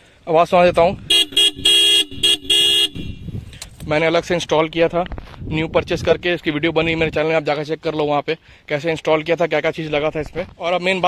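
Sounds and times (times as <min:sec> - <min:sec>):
motorcycle horn beeps: 0:01.1 - 0:03.4.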